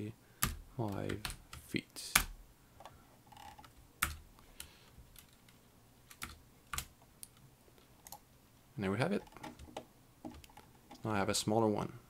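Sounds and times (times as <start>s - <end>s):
keyboard and mouse clicks: 9.2s - 11.1s.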